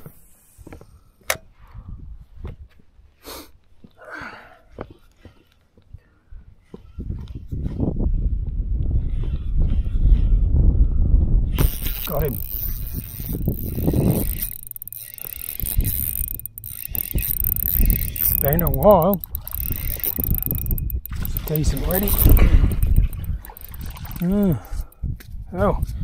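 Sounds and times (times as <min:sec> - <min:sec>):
wind rumbling on microphone: 0:07.0 - 0:26.0
fishing reel whirring: 0:11.6 - 0:25.0.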